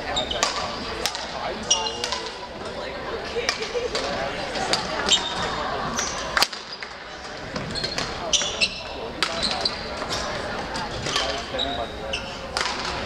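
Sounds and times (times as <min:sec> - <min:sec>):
shoes squeaking on gym floor: 0:00.1 - 0:00.8, 0:01.6 - 0:02.8, 0:04.0 - 0:12.8
racket hitting shuttlecock: 0:00.4 - 0:01.3, 0:01.9 - 0:02.4, 0:12.5 - 0:13.0.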